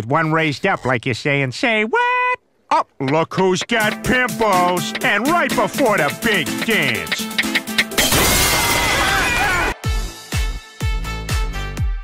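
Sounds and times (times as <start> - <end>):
deep electronic beat: 3.1 - 8.0
glass shattering and water bursting: 8.0 - 9.4.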